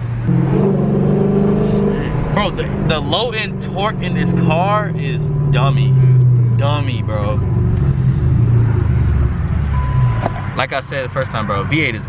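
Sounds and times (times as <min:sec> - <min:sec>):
car engine revving: 0:00.0 - 0:11.8.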